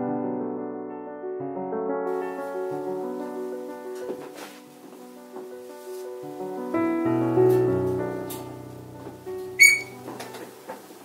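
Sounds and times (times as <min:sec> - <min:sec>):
solo piano chords: 0:00.0 - 0:11.0.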